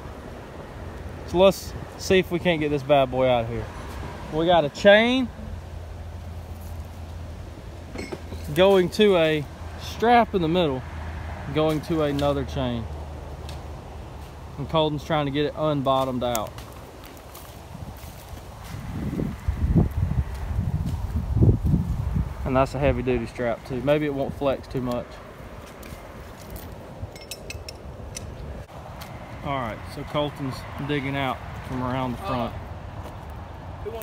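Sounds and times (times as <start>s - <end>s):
low rumble on microphone: 17.7s - 23.3s.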